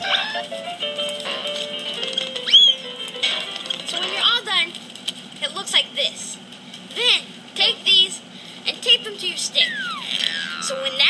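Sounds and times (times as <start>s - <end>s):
tv background music: 0.0s - 11.0s
high warbling vocal sounds: 9.6s - 11.0s.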